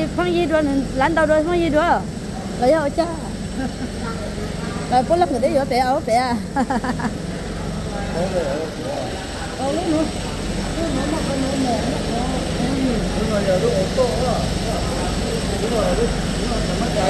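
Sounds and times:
people talking in low voices: 0.0s - 17.0s
steady low hum: 0.0s - 17.0s.

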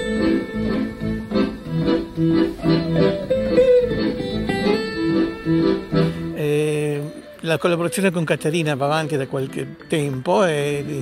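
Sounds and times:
acoustic guitar plucking: 0.0s - 11.0s
sustained accordion notes: 0.0s - 11.0s.

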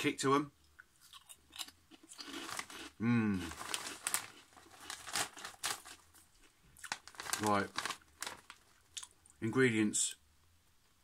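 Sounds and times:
crunchy snack being chewed: 1.0s - 6.0s, 6.8s - 9.2s.

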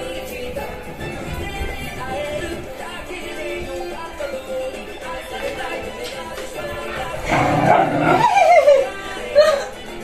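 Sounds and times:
dog whining: 7.3s - 8.8s.

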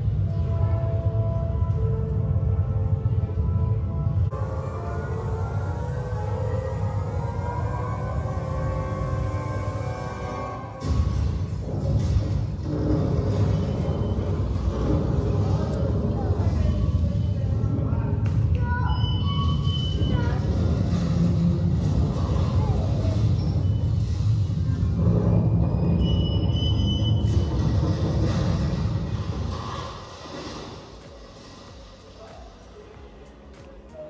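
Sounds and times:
faint voices: 0.0s - 10.9s, 12.5s - 34.0s
deep steady rumbling: 0.0s - 32.6s.

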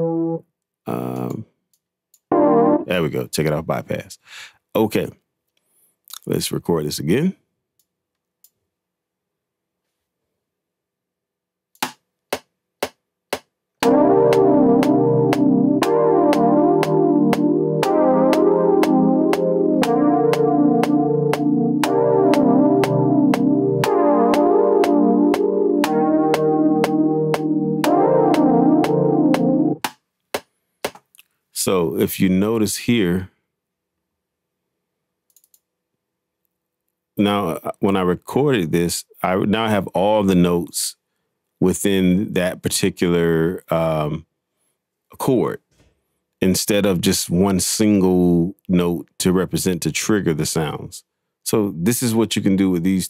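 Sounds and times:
electric piano chord: 0.0s - 0.4s, 2.3s - 3.0s, 13.8s - 29.8s
man talking: 0.9s - 1.5s, 2.8s - 5.2s, 6.1s - 7.4s, 31.6s - 33.3s, 37.2s - 41.0s, 41.6s - 44.2s, 45.1s - 45.6s, 46.4s - 53.0s
metronome clicks: 13.3s - 30.0s.

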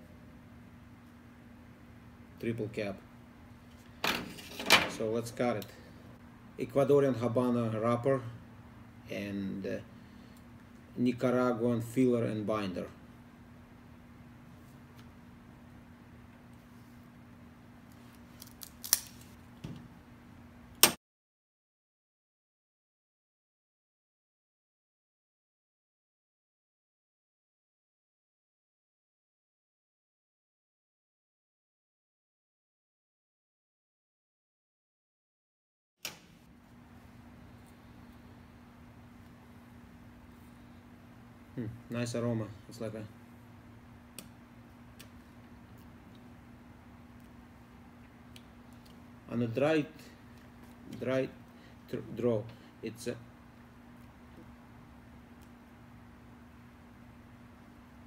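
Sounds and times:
faint steady hum: 0.0s - 21.0s, 36.1s - 58.0s.

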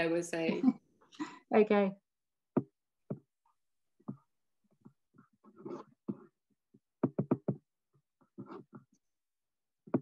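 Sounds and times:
soft knocks and clicks at desk: 7.0s - 7.7s.

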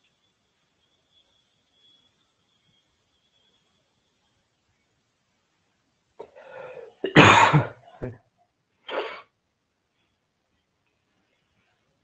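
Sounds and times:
person coughing: 7.0s - 7.9s.

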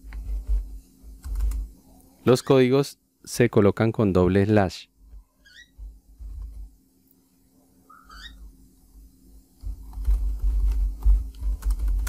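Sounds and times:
computer keyboard keystrokes: 1.2s - 1.6s, 9.9s - 12.0s
high bird-like chirps: 7.9s - 8.4s.

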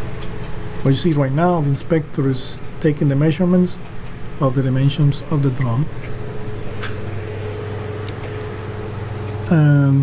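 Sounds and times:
faint steady whine: 0.0s - 10.0s
machinery engine droning: 0.0s - 10.0s.

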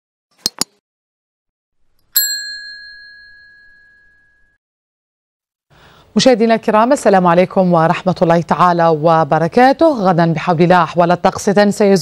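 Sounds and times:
bright notification bell ding: 2.2s - 4.5s.

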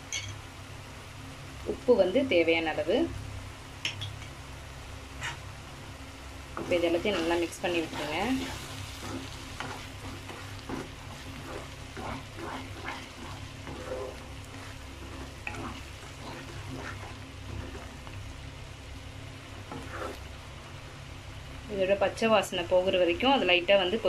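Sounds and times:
low sizzle of frying: 0.0s - 24.0s
spatula scraping frying pan: 6.6s - 18.2s, 19.6s - 20.3s.

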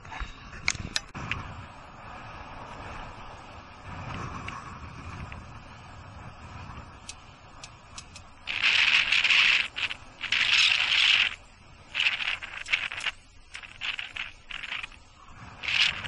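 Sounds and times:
wind and bicycle road noise: 0.0s - 16.0s
light clicks: 7.0s - 11.3s
rasping scratchy bursts: 8.5s - 16.0s.

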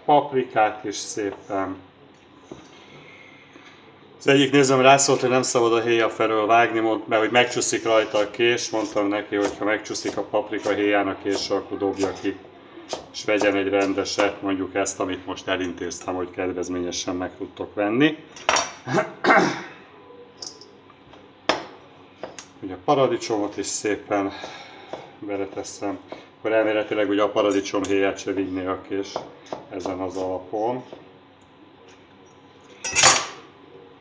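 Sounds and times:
knife scraping wooden cutting board: 7.6s - 12.2s.

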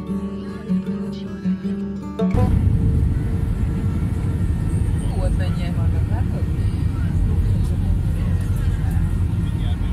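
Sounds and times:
faint voices: 2.4s - 9.9s
jet engines rumbling in cabin: 2.4s - 9.9s.

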